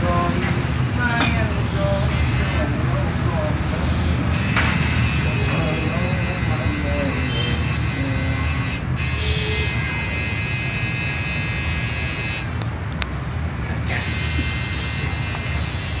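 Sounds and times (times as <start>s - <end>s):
tattoo machine buzzing: 2.1s - 2.7s, 4.3s - 12.6s, 13.9s - 16.0s.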